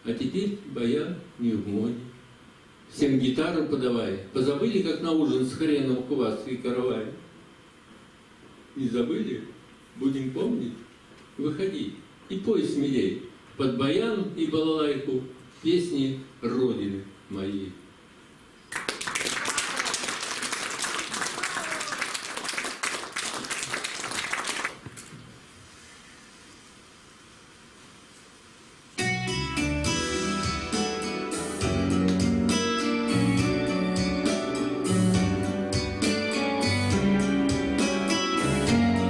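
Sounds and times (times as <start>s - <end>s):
audience applauding: 18.7s - 25.1s
guitar-led instrumental music: 29.0s - 39.0s.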